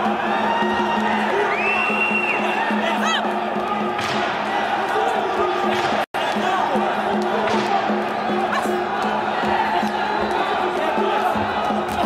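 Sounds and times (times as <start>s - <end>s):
arena crowd noise: 0.0s - 12.0s
music with pulsing beat: 0.0s - 12.0s.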